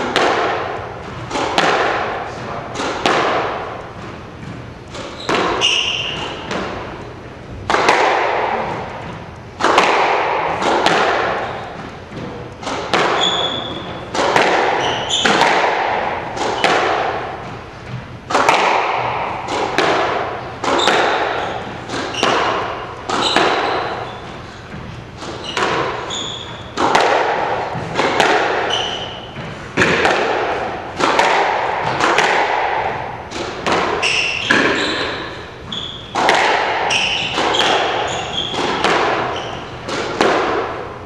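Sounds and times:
squash ball hitting racquets and walls: 0:00.0 - 0:41.0
shoes squeaking on hardwood floor: 0:03.8 - 0:07.2, 0:11.2 - 0:15.5, 0:20.4 - 0:26.9, 0:27.6 - 0:29.9, 0:34.0 - 0:36.2, 0:36.8 - 0:39.9.

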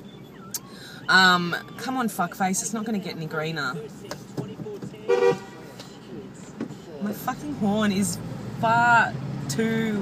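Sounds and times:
car horn toot: 0:05.1 - 0:05.7.

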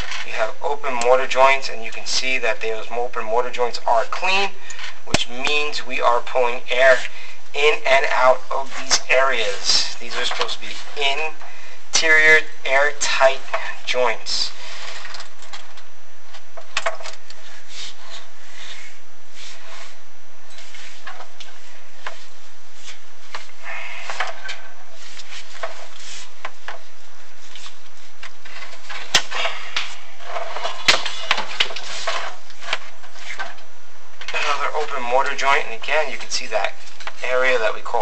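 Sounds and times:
camera scraping in flue: 0:00.0 - 0:01.8, 0:04.2 - 0:11.4, 0:12.0 - 0:38.0.

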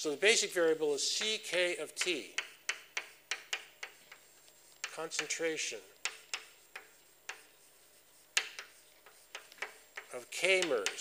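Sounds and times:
chalk tapping on a blackboard: 0:01.1 - 0:11.0.

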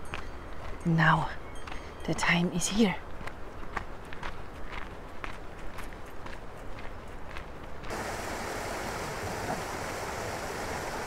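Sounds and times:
footsteps on gravel: 0:03.0 - 0:08.0
stream rushing over rocks: 0:07.9 - 0:11.0.

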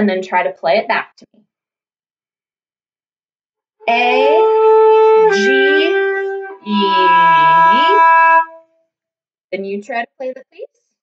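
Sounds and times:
person speaking: 0:03.9 - 0:04.6, 0:05.3 - 0:08.2
bowed string instrument held note: 0:03.9 - 0:08.6.

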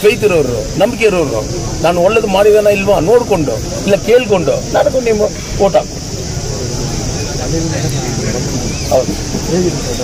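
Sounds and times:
man speaking loudly: 0:00.0 - 0:05.9
steady high hiss: 0:00.0 - 0:10.0.

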